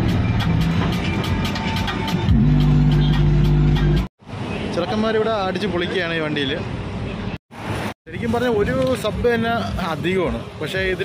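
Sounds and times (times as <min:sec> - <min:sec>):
loud music through car speakers: 0:00.0 - 0:04.1
heavy bass note: 0:02.2 - 0:04.1.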